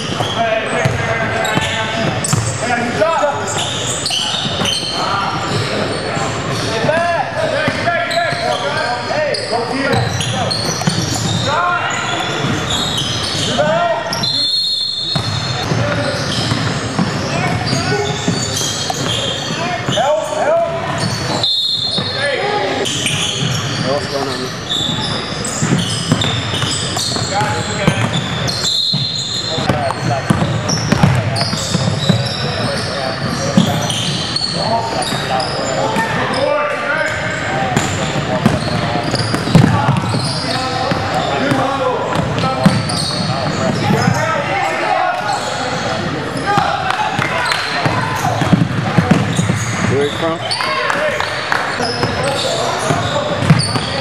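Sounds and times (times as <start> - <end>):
people talking and calling out: 0.0 - 54.0
basketball bouncing on court: 0.1 - 2.6, 6.5 - 8.6, 9.9 - 11.5, 15.1 - 20.0, 24.7 - 35.4, 37.1 - 44.2, 46.6 - 50.2, 51.8 - 54.0
sneakers on floor: 9.9 - 11.5, 24.7 - 35.3, 37.7 - 44.3, 46.4 - 50.2, 51.7 - 54.0.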